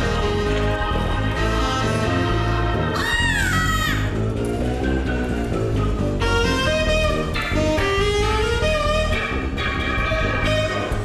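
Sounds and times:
stage music with a beat: 0.0s - 11.0s.

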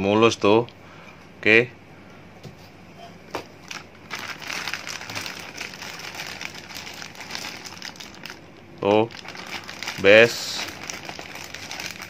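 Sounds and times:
plastic bag crinkling: 3.6s - 12.0s.

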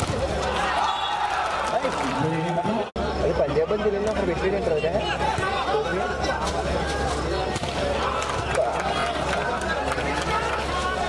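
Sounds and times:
din of spectators' voices: 0.0s - 11.0s.

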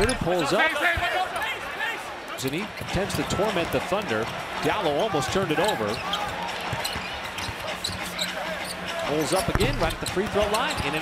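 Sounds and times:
arena crowd murmur: 0.0s - 11.0s.

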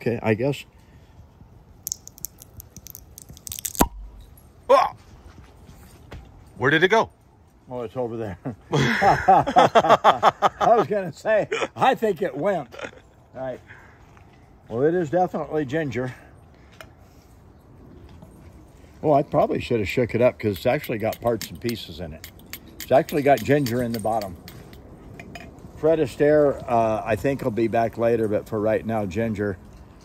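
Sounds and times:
bottle stopper popping: 1.8s - 4.3s
wire bale clicking and scraping: 1.9s - 4.0s.

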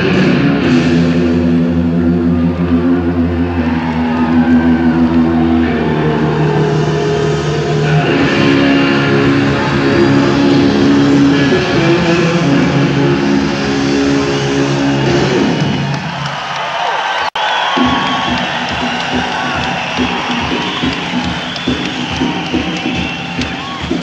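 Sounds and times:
sustained electric guitar: 0.0s - 16.0s
audience cheering and applauding: 2.4s - 11.9s, 13.5s - 24.0s.

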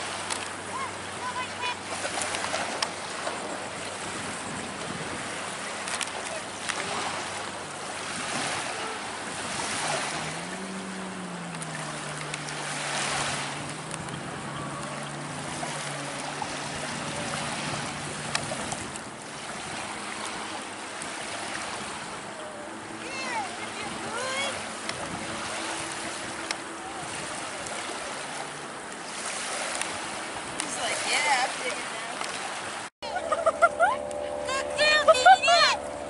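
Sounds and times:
wind on microphone: 0.0s - 31.8s
low motor hum: 0.0s - 36.0s
surf washing on beach: 0.0s - 36.0s.

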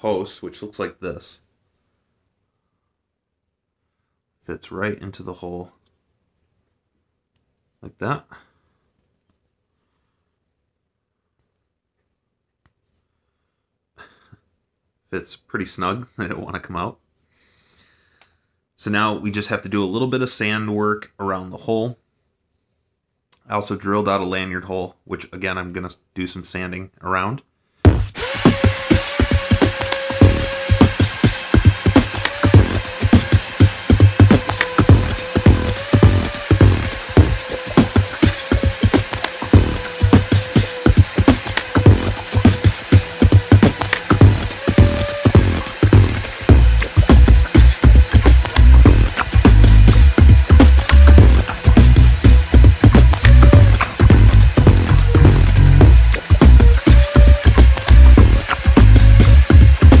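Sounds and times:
fast beat background music: 27.9s - 60.0s
rotary tool whining: 28.0s - 60.0s.

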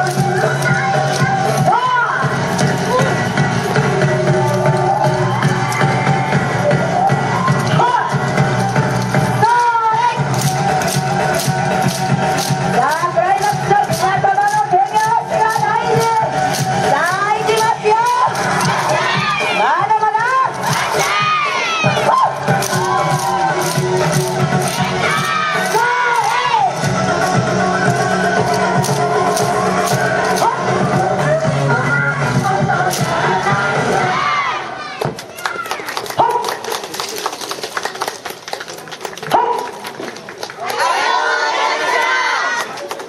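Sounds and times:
dance music with voices: 0.0s - 35.0s
hand clapping: 10.3s - 19.5s, 21.9s - 30.5s, 35.2s - 40.8s
crowd of children shouting: 40.6s - 42.7s.

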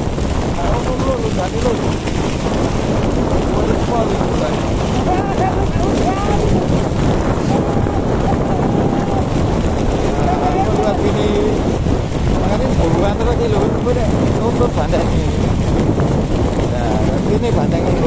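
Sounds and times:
motorcycle engine running: 0.0s - 18.0s
wind buffeting microphone: 0.0s - 18.0s.

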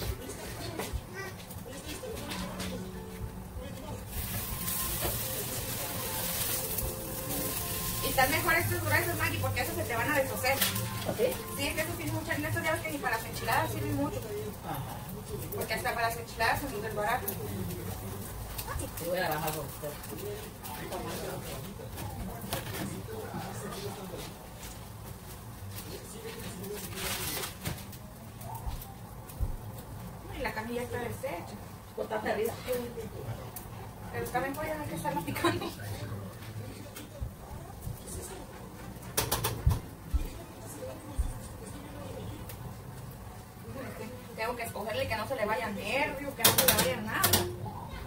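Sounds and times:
faint indistinct voices: 0.0s - 48.0s
tortillas sizzling in a pan: 0.0s - 48.0s.

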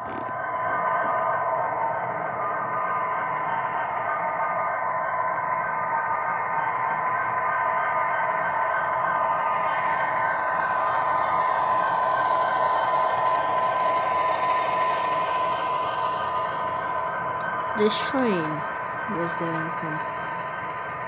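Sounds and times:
model locomotive running past: 0.0s - 21.0s
running gear whir and clatter: 0.0s - 21.0s.

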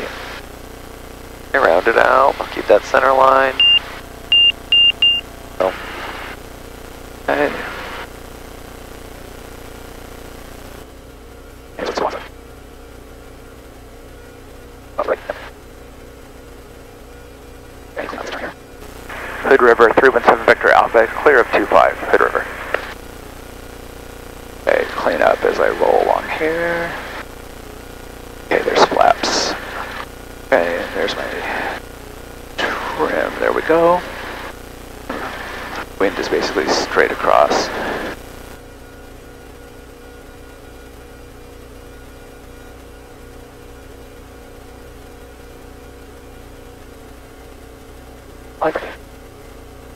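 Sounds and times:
aircraft engine idling hum: 0.1s - 49.9s
voices over headset: 1.6s - 4.0s, 5.6s - 6.4s, 7.3s - 8.1s, 11.8s - 12.3s, 15.0s - 15.6s, 18.0s - 23.0s, 24.6s - 27.2s, 28.5s - 31.8s, 32.6s - 38.2s, 48.6s - 49.0s
short high beeps: 3.6s - 5.3s.

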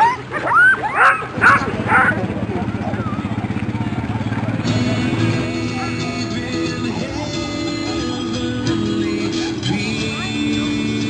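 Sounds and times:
dogs yipping and barking: 0.0s - 3.4s
truck engine running: 0.0s - 11.0s
music: 4.5s - 11.0s.

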